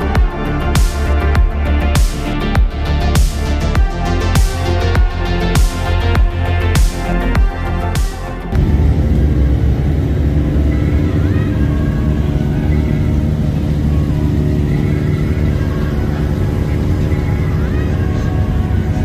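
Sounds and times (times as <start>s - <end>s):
motorcycle engines rumbling: 0.0s - 19.0s.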